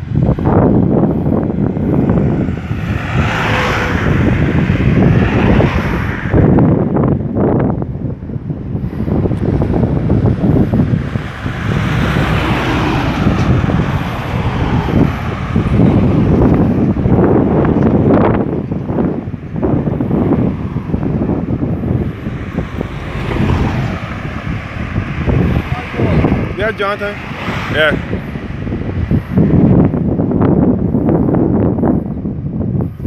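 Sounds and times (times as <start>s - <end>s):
cars passing: 0.0s - 33.0s
wind buffeting microphone: 0.0s - 33.0s.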